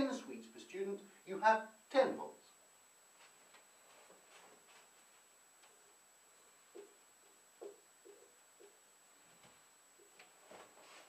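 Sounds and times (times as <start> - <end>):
man speaking: 0.0 - 2.6.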